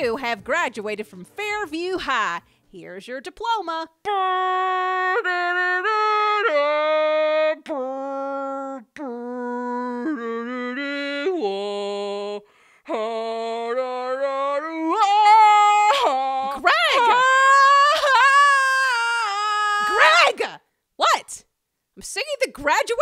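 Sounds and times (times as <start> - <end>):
person singing unaccompanied: 3.6 - 20.6.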